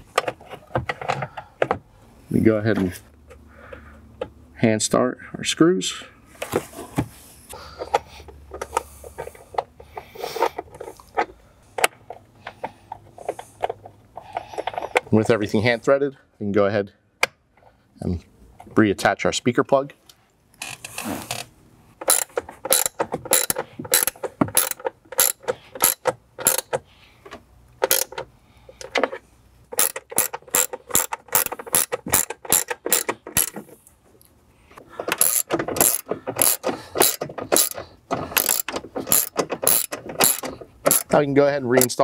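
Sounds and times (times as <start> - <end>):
hand ratchet clicking: 22.0 - 26.8, 27.8 - 29.1, 29.7 - 33.6, 35.0 - 41.2.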